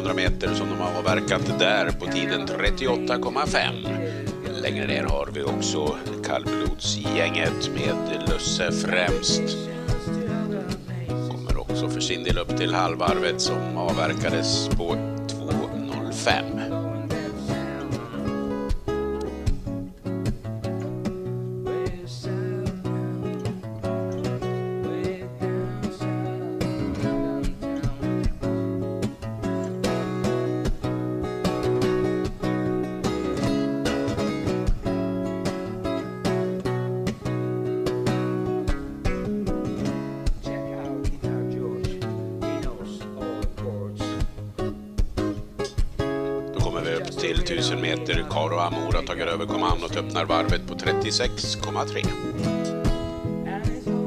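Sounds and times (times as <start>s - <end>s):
acoustic guitar music: 0.0s - 54.0s.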